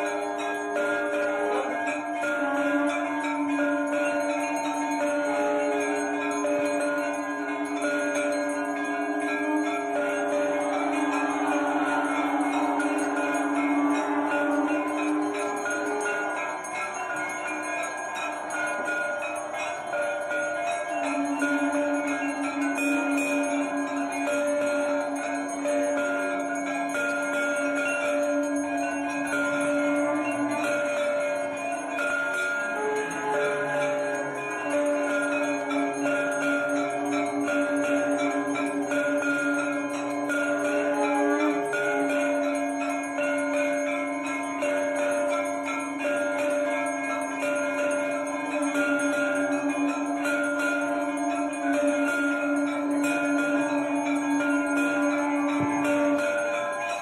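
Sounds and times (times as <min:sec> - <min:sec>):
temple bells ringing: 0:00.0 - 0:57.0.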